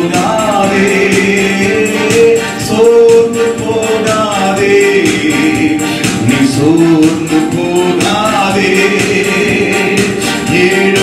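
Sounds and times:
man singing into a microphone: 0.0s - 11.0s
musical accompaniment with percussion beat: 0.0s - 11.0s.

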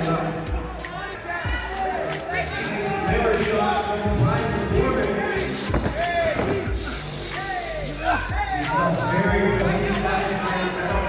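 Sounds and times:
background music: 0.0s - 11.0s
voices shouting: 0.0s - 11.0s
dull thuds: 5.6s - 7.0s.

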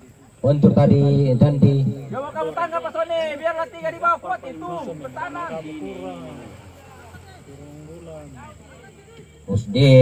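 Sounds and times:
voices talking quietly: 0.0s - 10.0s.

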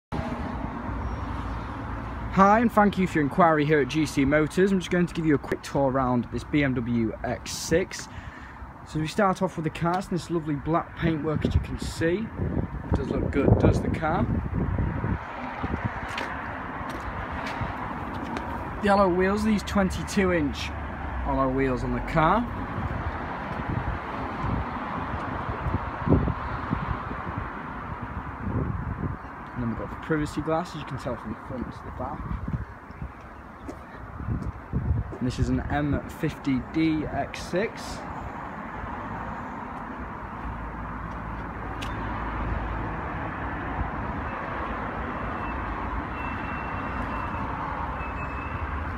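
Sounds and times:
vehicle sound: 0.1s - 48.9s
wind buffeting microphone: 11.3s - 18.8s, 22.5s - 36.1s.

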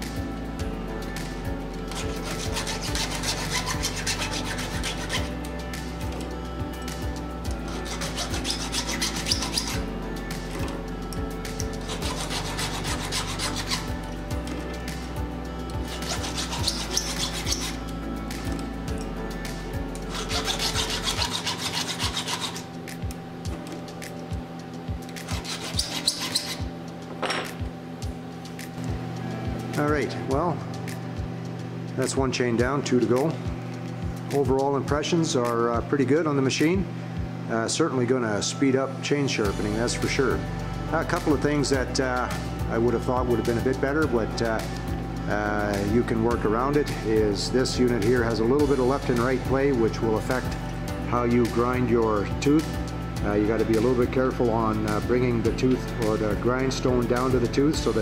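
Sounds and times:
background music: 0.0s - 58.0s
file rasping on chainsaw chain: 1.9s - 5.3s, 7.6s - 9.8s, 11.6s - 14.0s, 15.8s - 17.8s, 20.0s - 22.7s, 25.2s - 26.7s.

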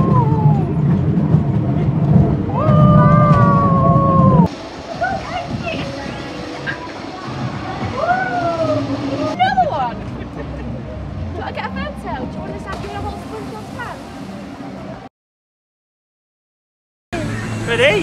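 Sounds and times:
low outdoor rumble: 0.0s - 15.1s
scattered voices: 4.7s - 14.1s.

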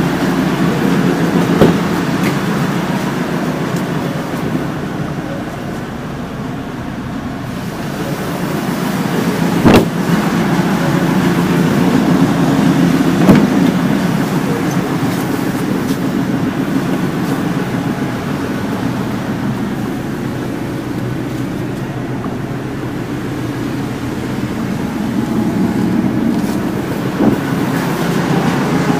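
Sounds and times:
low mechanical hum: 0.0s - 28.9s.

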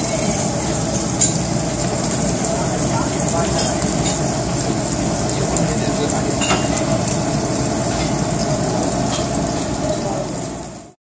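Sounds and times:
beef sizzling on a grill: 0.0s - 11.0s
murmur of voices: 2.0s - 4.4s.

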